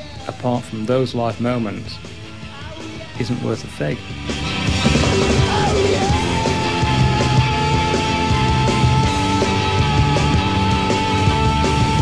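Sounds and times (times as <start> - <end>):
loud rock band music: 0.0 - 12.0
long held high note sliding: 5.6 - 12.0.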